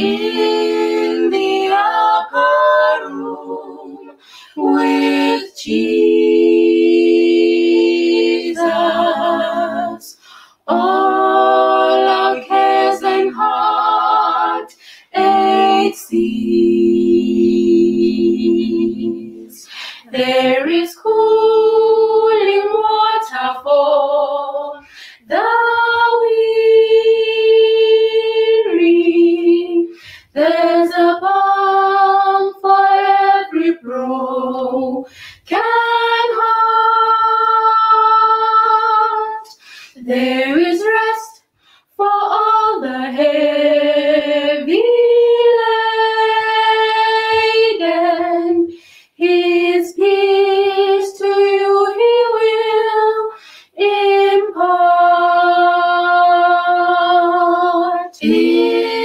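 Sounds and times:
women singing a cappella: 0.0s - 59.0s.

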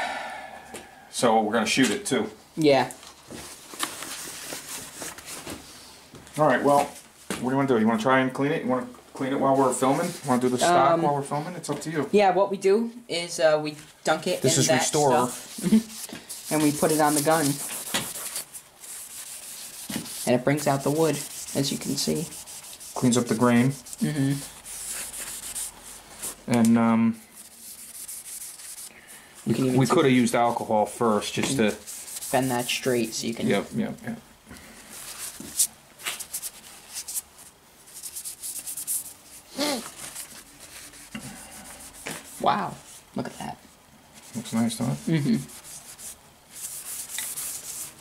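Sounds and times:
cloth rag rubbing wood: 9.4s - 10.8s, 14.4s - 26.5s, 27.4s - 33.7s, 34.9s - 43.1s, 44.2s - 48.0s
rag rubbing wood: 14.6s - 24.0s.

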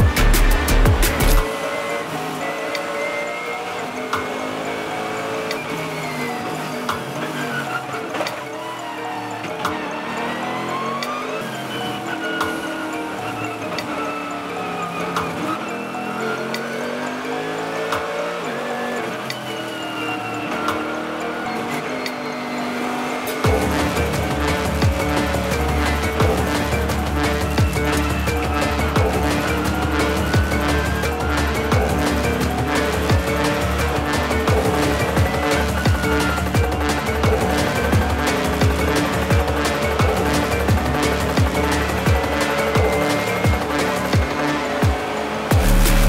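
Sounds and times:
drum and bass beat: 0.0s - 1.5s, 23.2s - 46.0s
race car engine revving: 0.0s - 46.0s.

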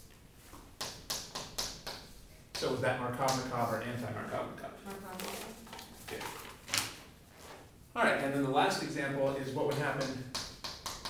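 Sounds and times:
person speaking: 2.6s - 6.6s
chalk strokes on a chalkboard: 3.5s - 4.2s.

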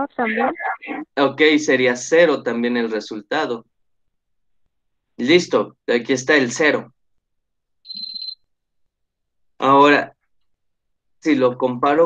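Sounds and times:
high-pitched beep: 7.9s - 8.4s.

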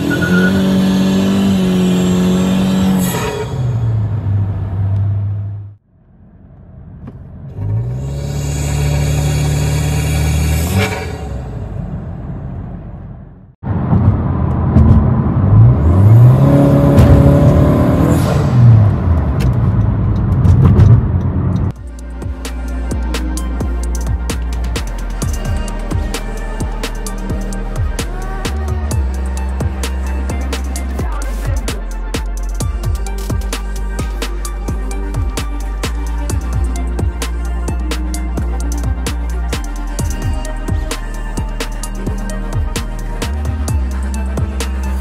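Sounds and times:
turbocharged car engine revving: 0.0s - 5.8s, 7.5s - 12.0s, 13.9s - 45.0s.

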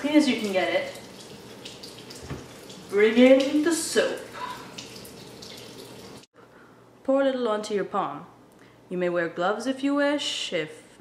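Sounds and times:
tap water running into sink: 0.0s - 6.3s.

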